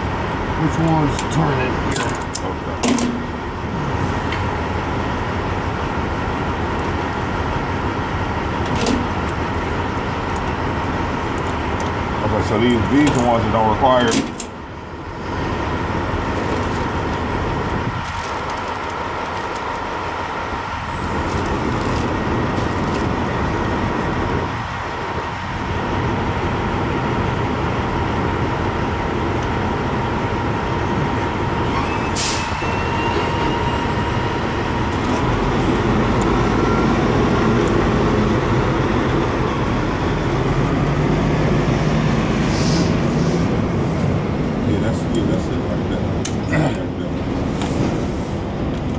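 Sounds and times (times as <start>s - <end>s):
truck engine idling: 0.0s - 48.9s.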